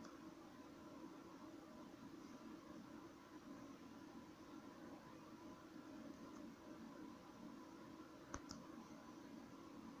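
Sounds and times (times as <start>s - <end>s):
faint steady hum: 0.0s - 10.0s
faint clicks: 8.3s - 8.7s.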